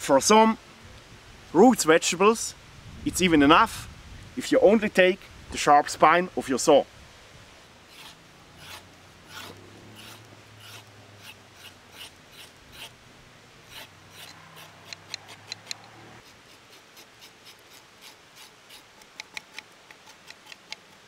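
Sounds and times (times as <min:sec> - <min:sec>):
saw blade scraping carrot: 0:07.9 - 0:13.0, 0:13.6 - 0:21.0.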